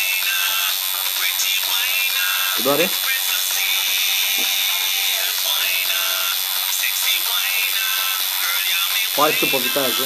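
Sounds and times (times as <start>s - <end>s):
tattoo machine buzzing: 0.0s - 10.0s.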